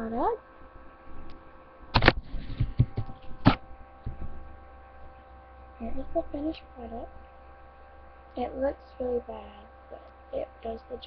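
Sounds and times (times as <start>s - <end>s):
electrical mains hum: 0.0s - 11.0s
person speaking: 8.4s - 11.0s.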